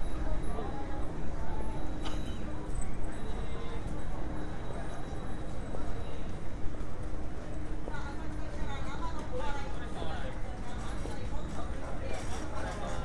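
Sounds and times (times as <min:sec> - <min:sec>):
voices of passers-by: 0:00.0 - 0:13.0.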